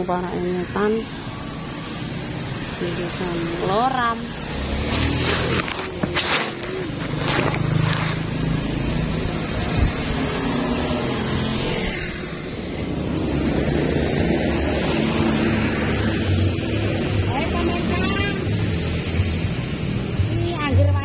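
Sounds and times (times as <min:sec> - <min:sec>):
cars and motorcycles passing: 0:00.0 - 0:21.0.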